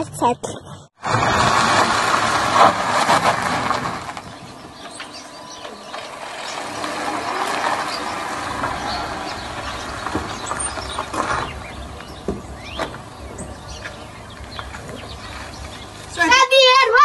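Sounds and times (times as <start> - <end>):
tyres crunching on dirt: 1.0 - 16.9
car engine running: 1.2 - 16.4.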